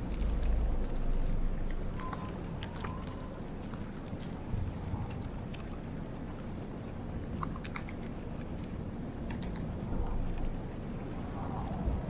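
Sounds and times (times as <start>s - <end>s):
ship engine low rumble: 0.0s - 12.0s.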